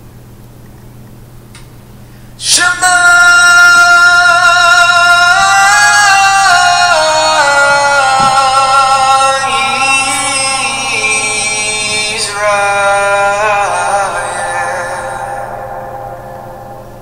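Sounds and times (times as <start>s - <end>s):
person singing a song: 2.4s - 17.0s.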